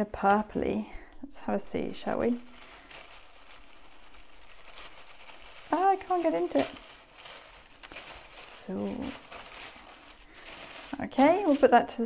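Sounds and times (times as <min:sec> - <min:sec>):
faint tissue paper rustling: 0:01.5 - 0:12.0.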